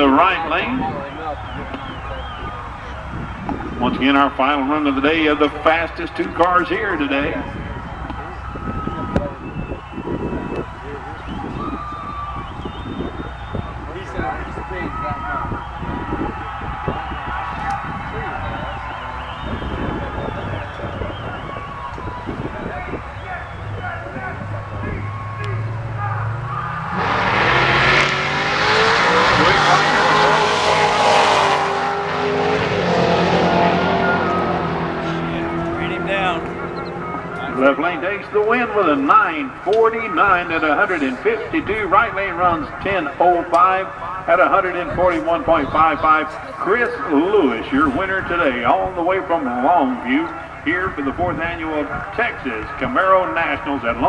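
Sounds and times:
drag car engines rumbling: 0.0s - 54.0s
drag cars accelerating through gears: 23.2s - 40.9s.

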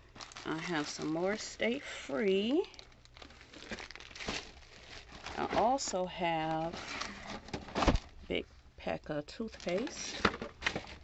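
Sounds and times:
plastic wrapping crinkling: 0.0s - 8.2s, 9.5s - 11.0s.

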